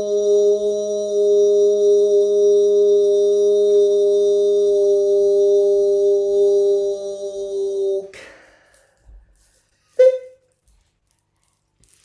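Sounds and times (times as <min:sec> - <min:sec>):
man singing a long tone: 0:00.0 - 0:08.2.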